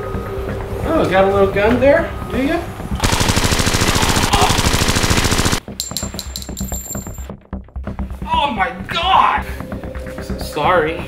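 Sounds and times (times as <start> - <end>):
rapid automatic gunfire: 3.0 - 5.6.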